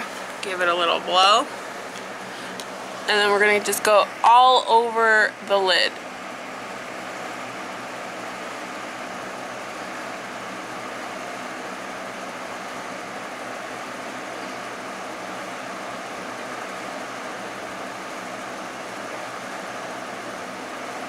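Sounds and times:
electric fan running: 0.0s - 21.0s.

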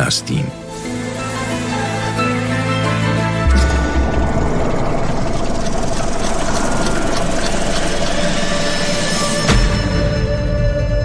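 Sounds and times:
mechanical whirring rattle: 3.7s - 9.5s.

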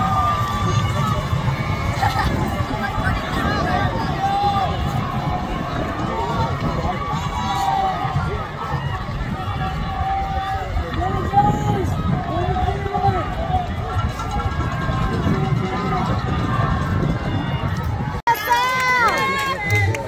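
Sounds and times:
crowd cheering and shouting: 0.0s - 20.0s.

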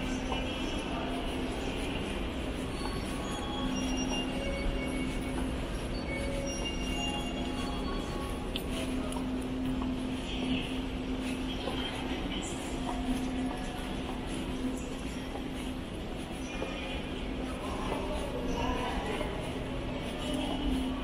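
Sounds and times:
low drone of terminal hall: 0.0s - 21.0s.

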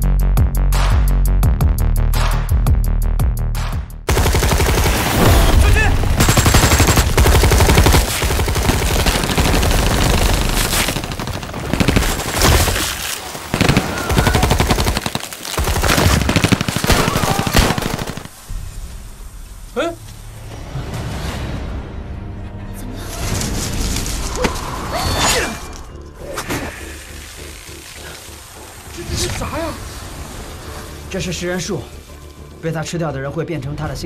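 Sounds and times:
film music: 0.0s - 34.0s
rapid gunfire-like cracks: 4.1s - 18.5s.

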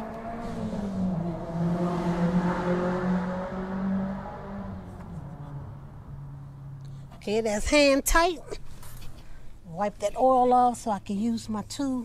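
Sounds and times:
vehicle engine hum: 0.0s - 12.0s.

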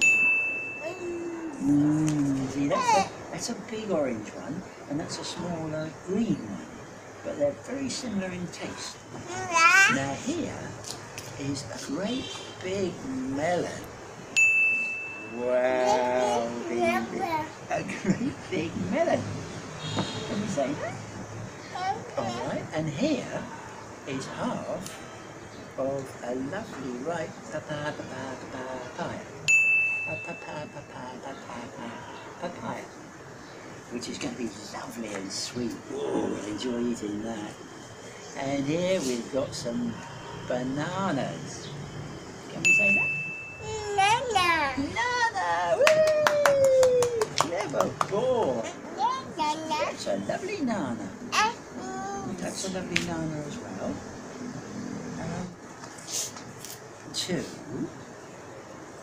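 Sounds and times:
bright ding: 0.0s - 1.2s, 14.4s - 15.5s, 29.5s - 30.8s, 42.6s - 43.8s
steady background noise: 0.0s - 59.0s
man saying uh: 22.2s - 23.6s.

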